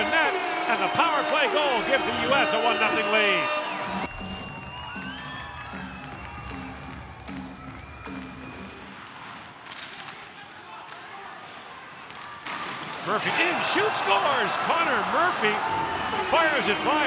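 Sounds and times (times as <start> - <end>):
arena music: 0.0 - 9.1, 13.4 - 17.0
crowd noise: 0.0 - 17.0.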